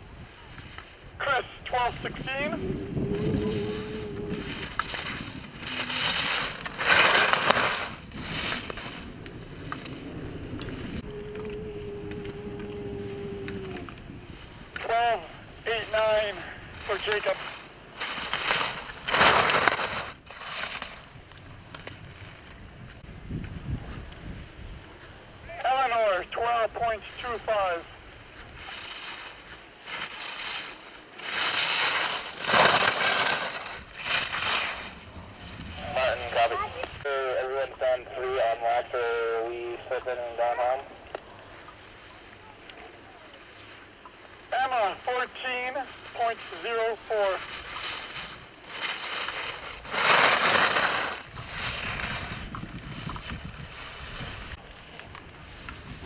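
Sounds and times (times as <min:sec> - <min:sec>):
ski edges scraping on snow: 0:00.4 - 0:10.0, 0:10.6 - 0:23.0, 0:25.6 - 0:37.0, 0:41.5 - 0:56.0
raised voices calling out: 0:01.2 - 0:04.8, 0:11.0 - 0:17.4.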